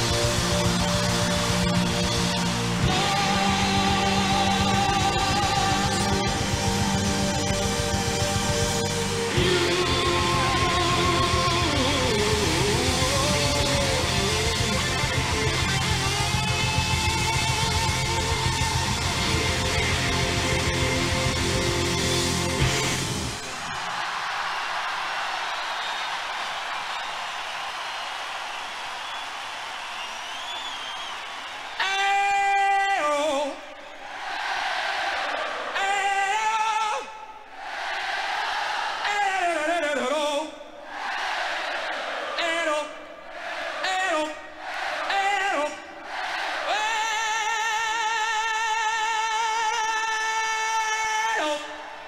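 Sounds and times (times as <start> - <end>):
crowd cheering: 0.0 - 40.0, 40.8 - 52.0
man singing unaccompanied: 2.8 - 6.4, 9.3 - 14.8.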